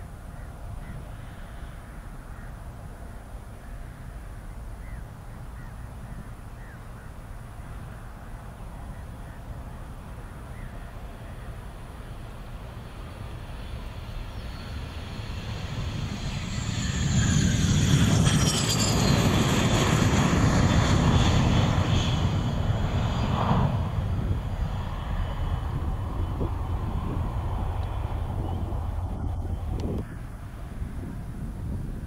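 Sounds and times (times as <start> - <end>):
jet passing close with whine: 10.9 - 32.0.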